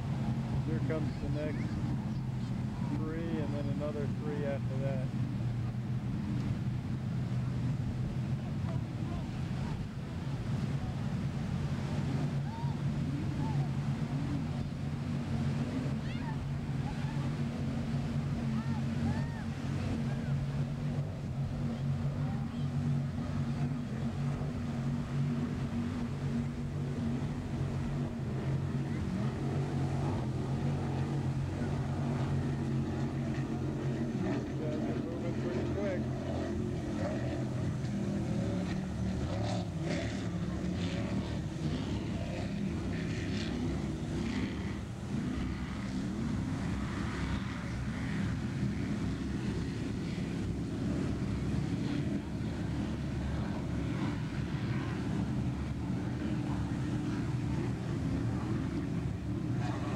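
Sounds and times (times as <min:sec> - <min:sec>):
powerboat engines droning: 0:00.0 - 0:59.9.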